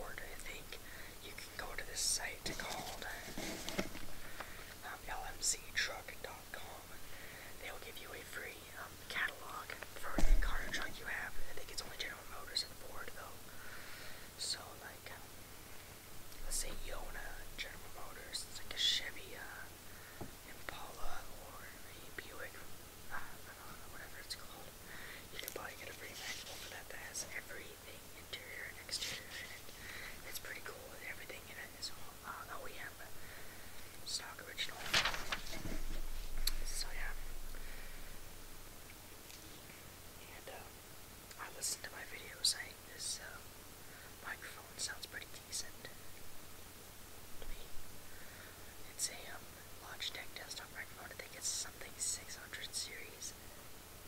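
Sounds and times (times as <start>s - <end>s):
person whispering: 0.0s - 4.0s, 4.8s - 7.0s, 7.6s - 13.4s, 14.4s - 15.3s, 16.4s - 19.7s, 20.5s - 33.2s, 34.0s - 37.3s, 40.2s - 40.7s, 41.3s - 43.4s, 44.2s - 46.0s, 47.4s - 47.8s, 48.8s - 53.4s.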